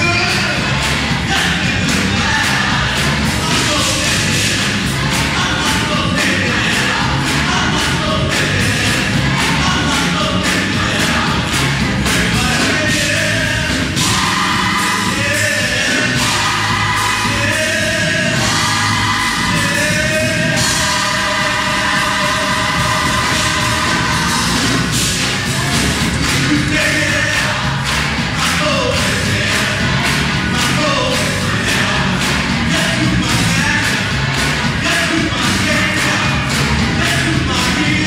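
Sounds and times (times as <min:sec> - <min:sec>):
drums keeping a steady beat: 0:00.0 - 0:38.0
gospel choir singing: 0:00.0 - 0:38.0.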